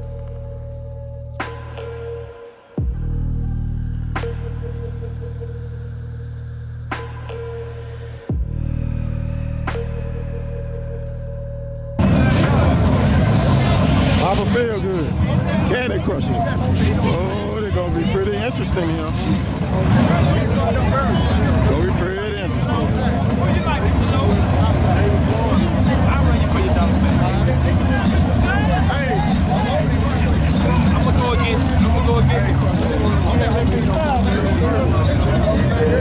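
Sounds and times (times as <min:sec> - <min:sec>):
car engines idling: 0:00.0 - 0:36.0
crowd talking: 0:00.0 - 0:36.0.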